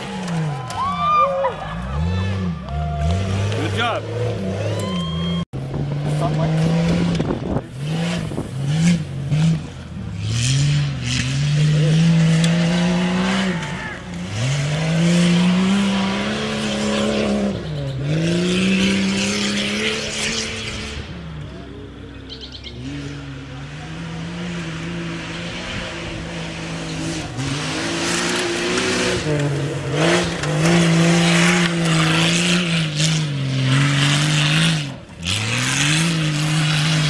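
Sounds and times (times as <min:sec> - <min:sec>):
car engine revving: 0:00.0 - 0:37.0.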